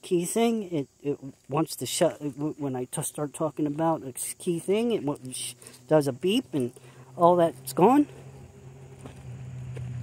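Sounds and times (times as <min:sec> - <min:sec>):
footsteps on gravel: 0:01.2 - 0:10.0
vehicle engine hum: 0:01.2 - 0:10.0.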